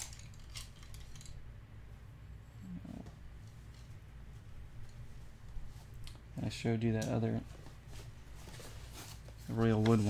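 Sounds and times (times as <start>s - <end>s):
low hum: 0.0s - 6.8s.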